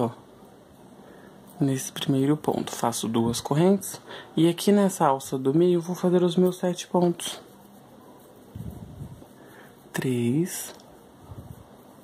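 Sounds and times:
faint yarn rustling: 0.7 - 12.0.

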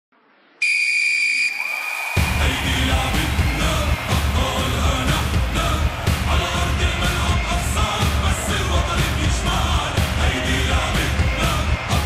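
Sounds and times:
referee's whistle blast: 0.6 - 2.4
arena crowd noise: 1.3 - 12.0.

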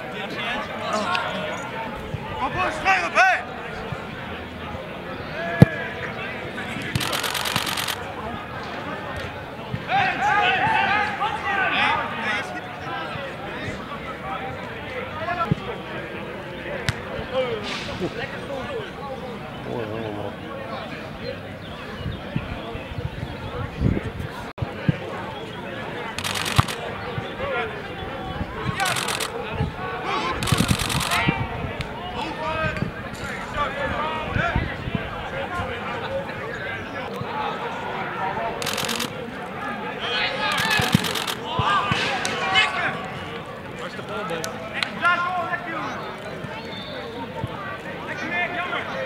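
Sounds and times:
players calling: 0.0 - 21.9, 25.2 - 32.6, 36.0 - 49.0
players calling out: 25.4 - 32.5, 38.0 - 44.3.

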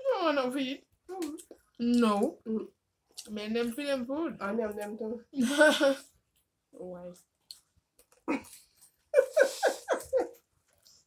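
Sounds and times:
woman laughing: 9.1 - 10.4.

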